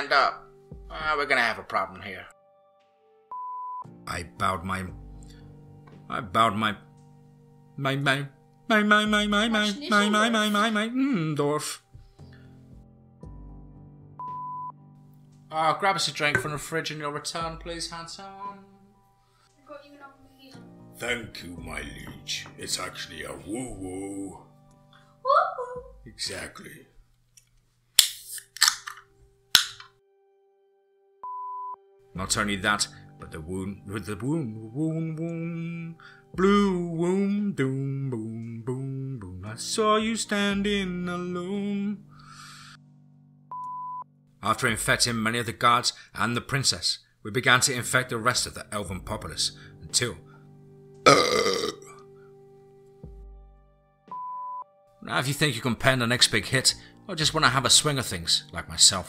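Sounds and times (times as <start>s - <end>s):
electronic beep: 3.3s - 3.8s, 14.2s - 14.8s, 31.2s - 31.8s, 43.5s - 44.1s, 54.1s - 54.7s
person burping: 51.1s - 52.0s.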